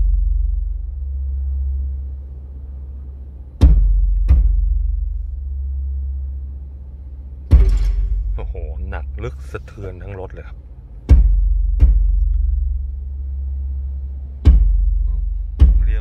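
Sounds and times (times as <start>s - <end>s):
bass-heavy music in car: 0.0s - 16.0s
sharp drum hits: 7.5s - 8.5s.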